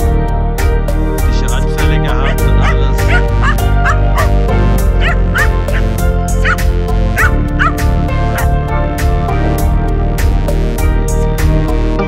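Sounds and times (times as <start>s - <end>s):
small dog barking: 2.2s - 4.4s, 5.0s - 6.6s, 7.2s - 7.8s.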